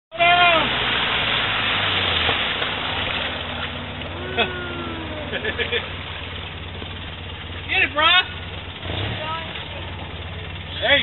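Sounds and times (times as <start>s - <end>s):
off-road vehicle engine running: 0.1s - 11.0s
splashing muddy water: 0.1s - 11.0s.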